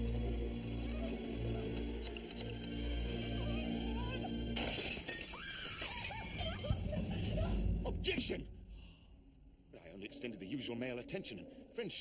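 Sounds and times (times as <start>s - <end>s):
tense background music: 0.0s - 12.0s.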